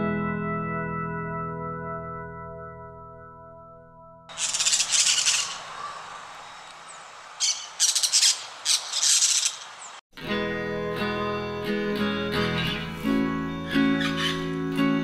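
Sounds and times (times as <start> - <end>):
parakeet squawks: 4.3 - 6.2, 7.4 - 9.8, 14.0 - 14.5
strummed acoustic guitar music: 10.2 - 15.0.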